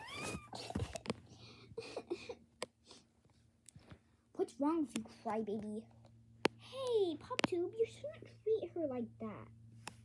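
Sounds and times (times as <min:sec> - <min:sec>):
girl fake-crying: 0:00.0 - 0:01.0
girl whimpering: 0:00.0 - 0:01.0.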